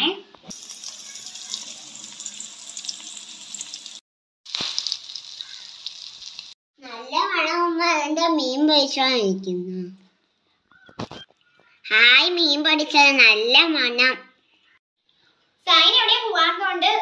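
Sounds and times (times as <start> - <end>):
fish sizzling in hot oil: 0.5 - 6.6.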